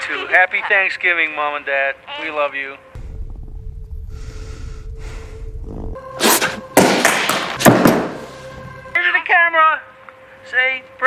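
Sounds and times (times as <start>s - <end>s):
low steady rumble: 3.0s - 6.0s
loud thuds and crashes: 6.3s - 8.3s.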